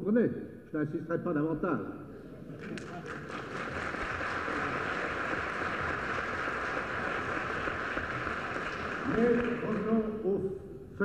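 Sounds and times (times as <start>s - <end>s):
audience applauding: 2.6s - 10.2s.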